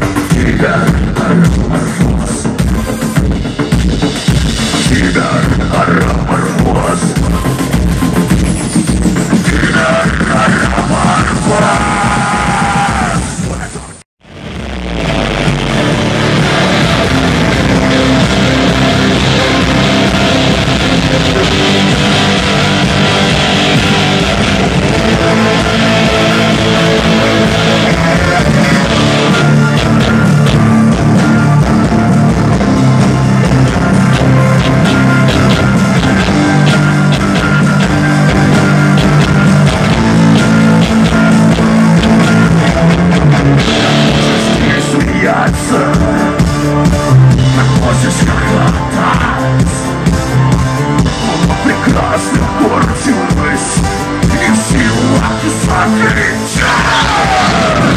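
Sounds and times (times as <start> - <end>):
rock band playing loud: 0.0 - 57.9.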